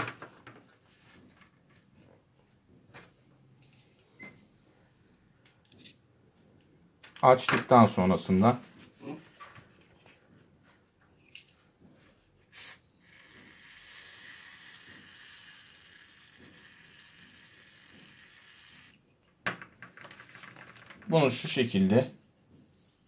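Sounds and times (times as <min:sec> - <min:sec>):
aerosol spray hiss: 0:12.5 - 0:13.5.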